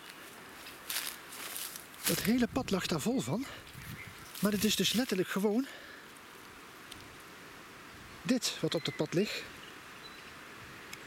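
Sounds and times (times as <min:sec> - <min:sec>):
footsteps through grass and leaves: 0:00.0 - 0:06.6
foliage rustling: 0:00.0 - 0:08.3.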